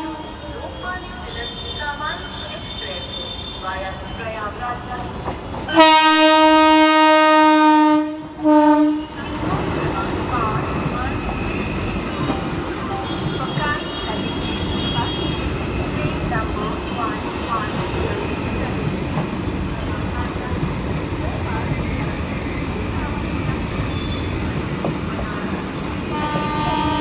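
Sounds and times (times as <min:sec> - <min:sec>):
train horn blasts: 0:00.0 - 0:00.6, 0:05.7 - 0:09.3, 0:26.0 - 0:27.0
train coaches rumbling past: 0:00.0 - 0:27.0.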